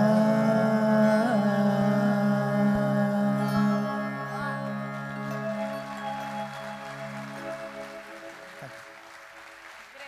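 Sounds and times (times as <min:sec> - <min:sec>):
audience applauding: 0:04.9 - 0:10.0.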